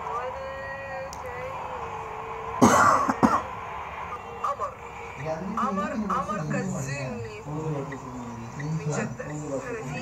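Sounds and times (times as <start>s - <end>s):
person coughing: 2.6s - 3.5s.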